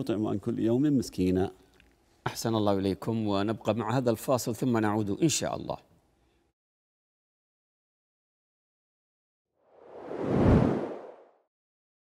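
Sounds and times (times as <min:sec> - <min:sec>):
deep whoosh: 0:09.8 - 0:11.2.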